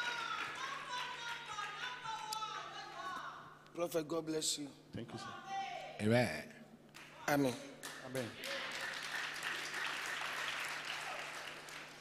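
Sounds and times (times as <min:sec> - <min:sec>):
congregation applauding: 0:00.0 - 0:02.0, 0:07.8 - 0:12.0.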